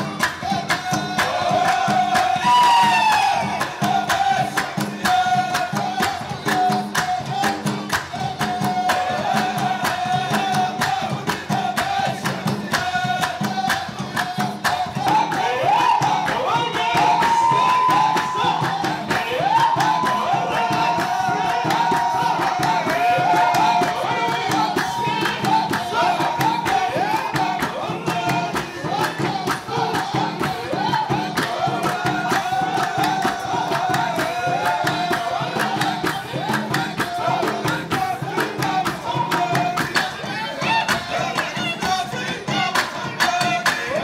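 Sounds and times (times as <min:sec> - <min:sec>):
men singing in unison: 0:00.0 - 0:44.0
steady handclaps: 0:00.0 - 0:44.0.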